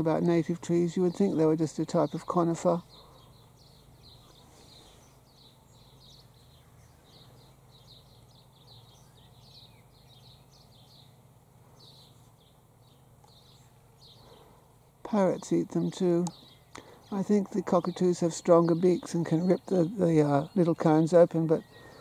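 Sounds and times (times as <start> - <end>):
low steady hum: 0.0 - 22.0
small birds chirping: 0.0 - 22.0.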